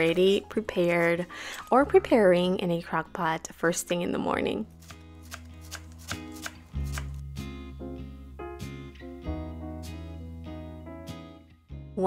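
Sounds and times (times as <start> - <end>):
knife chopping on cutting board: 4.8 - 7.2.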